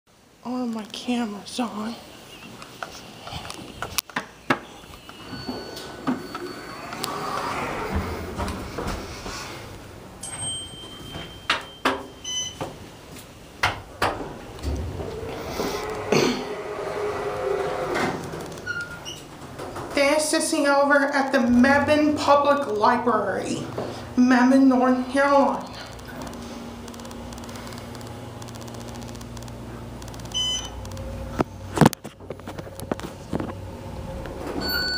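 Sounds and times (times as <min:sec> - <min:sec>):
door equipment hum and rustle: 0:03.3 - 0:24.2, 0:25.4 - 0:34.9
elevator doors sliding: 0:04.6 - 0:24.1, 0:30.3 - 0:34.9
thin high tones: 0:04.7 - 0:08.8
sharp clicks and knocks: 0:25.8 - 0:33.6.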